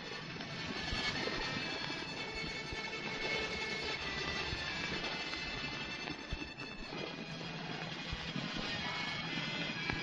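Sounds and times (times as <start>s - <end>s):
record crackle clicks: 0.0s - 10.0s.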